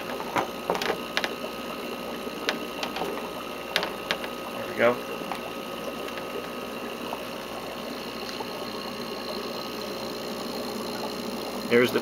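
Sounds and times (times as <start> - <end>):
pumps humming: 0.0 - 12.0.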